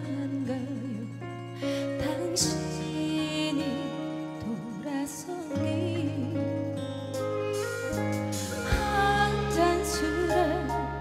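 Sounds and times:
live band sustained chords: 0:00.0 - 0:11.0
person singing: 0:08.4 - 0:11.0.

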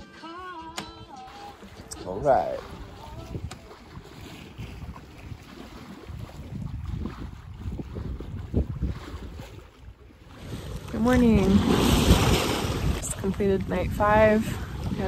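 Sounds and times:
sea washing: 0:00.2 - 0:15.0
wind rumbling on microphone: 0:01.8 - 0:15.0.

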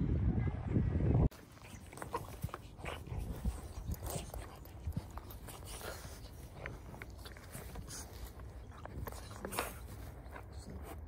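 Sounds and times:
dog rolling in grass: 0:01.4 - 0:11.0.

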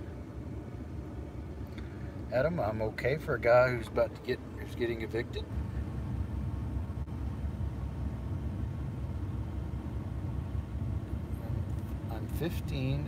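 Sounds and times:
car idling from inside: 0:00.0 - 0:13.0.

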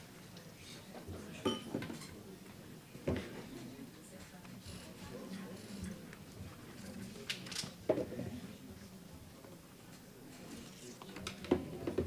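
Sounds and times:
faint murmuring voices: 0:00.0 - 0:12.0
tableware knocking on table: 0:01.4 - 0:01.9
tableware clinking: 0:01.4 - 0:02.2.

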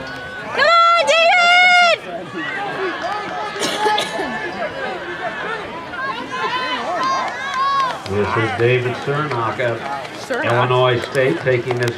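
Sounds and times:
crowd chatter: 0:00.0 - 0:11.9
spectator yelling a high cheer: 0:00.5 - 0:03.6.

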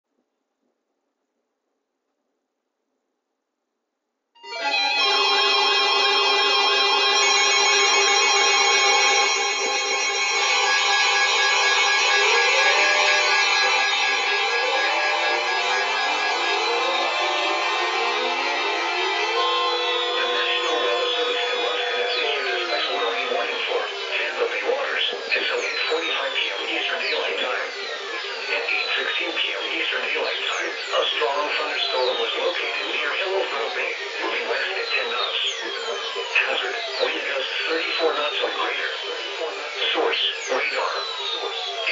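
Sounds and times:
steady alert tones: 0:04.4 - 0:29.0
siren-like sweeps: 0:04.4 - 0:32.8, 0:34.8 - 0:41.9.

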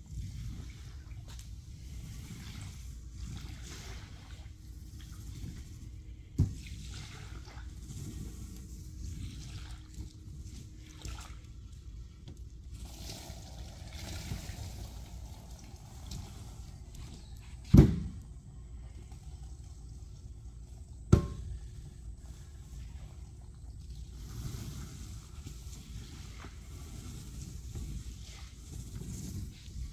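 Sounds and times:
squeegee pushing water on rug: 0:00.0 - 0:17.6, 0:21.5 - 0:29.9
water trickling through grate: 0:06.6 - 0:17.6
sharp knocks: 0:21.1 - 0:21.4.

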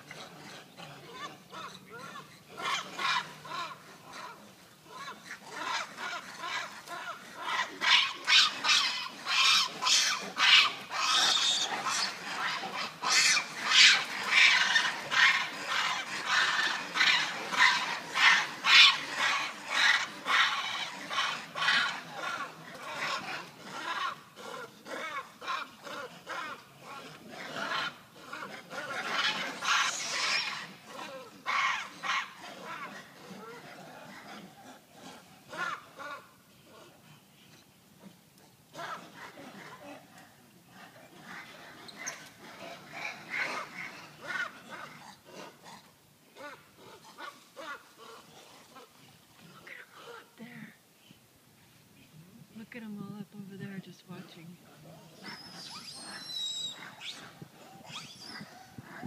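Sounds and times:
monkeys calling in harsh bursts: 0:07.4 - 0:24.2, 0:55.2 - 0:58.4.

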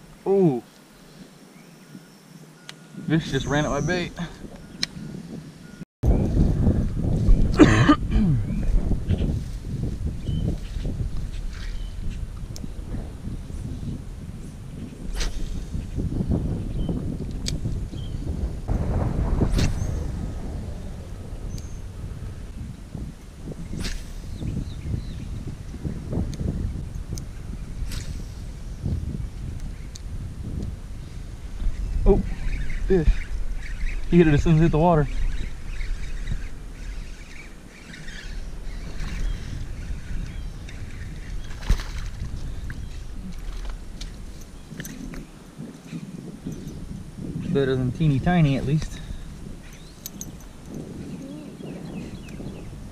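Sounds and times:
wind rumbling on microphone: 0:00.0 - 0:52.9.

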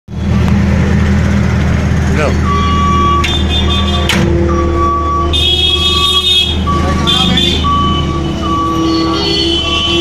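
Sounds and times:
diesel engine running: 0:00.1 - 0:10.0
reverse warning beeps: 0:02.4 - 0:10.0.

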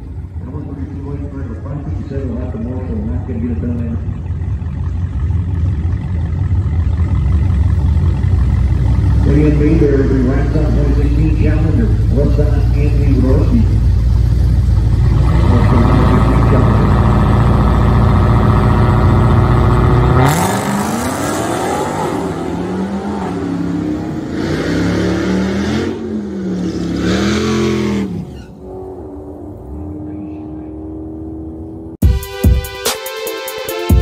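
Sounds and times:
drag car engine revving: 0:00.0 - 0:32.0.

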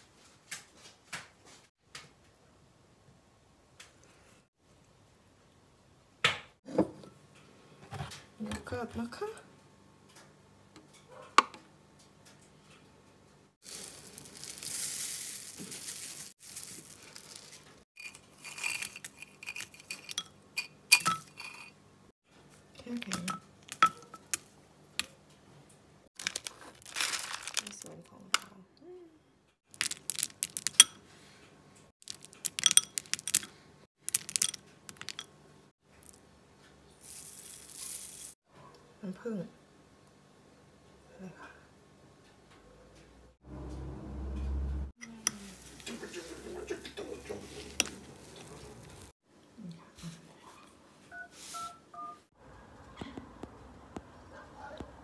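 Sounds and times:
packaging crinkling and tearing: 0:13.6 - 0:17.8, 0:26.2 - 0:28.1, 0:29.7 - 0:30.8, 0:32.0 - 0:35.0
oats poured into bowl: 0:13.6 - 0:19.7, 0:37.0 - 0:38.4
nuts and berries clicking in bowl: 0:29.7 - 0:31.0, 0:32.0 - 0:35.3.

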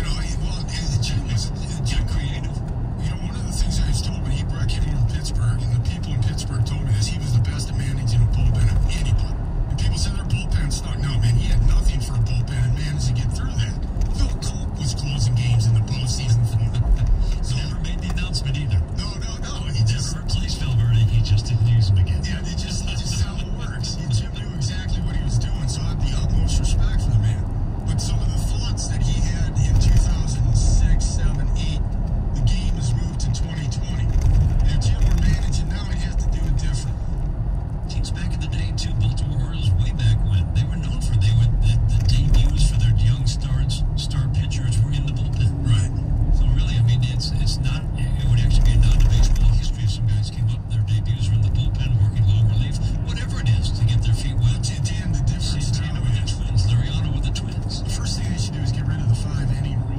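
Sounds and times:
talk radio voice: 0:00.0 - 0:37.2, 0:37.9 - 0:59.9
car cabin road rumble: 0:00.0 - 0:59.9.

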